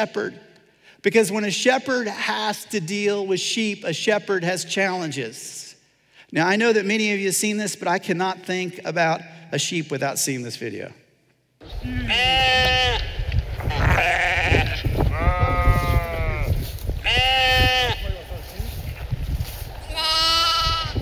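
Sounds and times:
sheep bleating: 11.7 - 18.3, 19.8 - 21.0.

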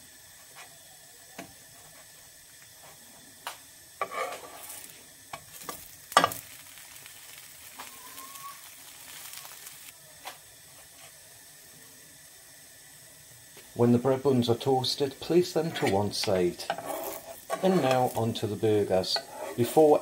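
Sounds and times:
buns sizzling in a frying pan: 0.0 - 20.0.

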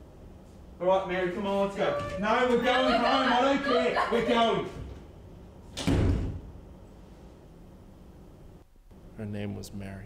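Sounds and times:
door slamming: 5.7 - 6.5.

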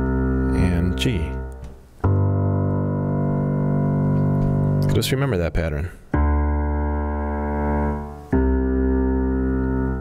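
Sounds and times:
low piano octave ringing: 0.0 - 10.0.

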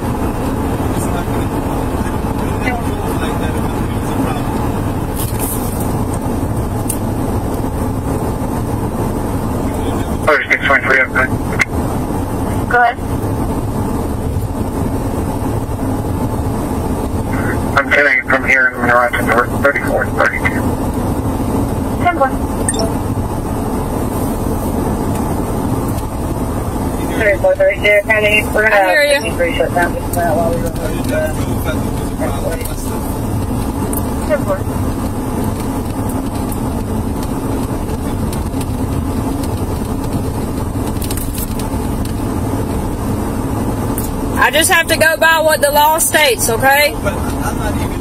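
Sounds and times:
car road and engine noise: 0.0 - 48.0
voices: 0.9 - 4.8, 9.6 - 11.7, 12.4 - 13.1, 17.3 - 20.7, 21.9 - 23.0, 26.9 - 33.2, 33.9 - 34.7, 44.4 - 48.0.

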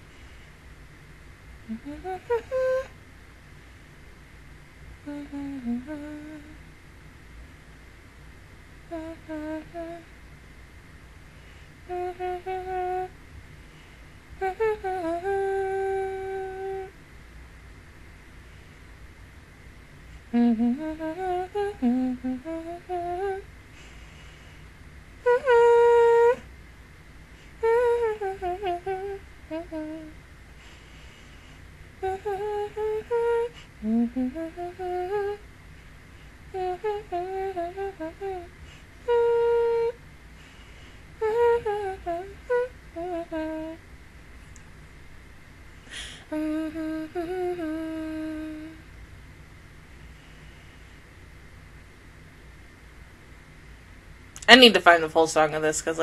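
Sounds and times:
woman humming a melody: 1.6 - 3.0, 5.0 - 6.7, 8.9 - 10.1, 11.8 - 13.2, 14.4 - 17.0, 20.3 - 23.5, 25.2 - 26.5, 27.6 - 30.2, 32.0 - 35.4, 36.5 - 40.0, 41.2 - 43.8, 45.9 - 48.9.

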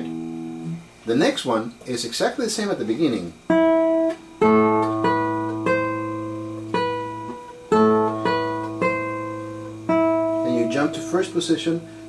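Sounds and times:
classical guitar plucked melody: 0.0 - 0.9, 3.5 - 12.0.

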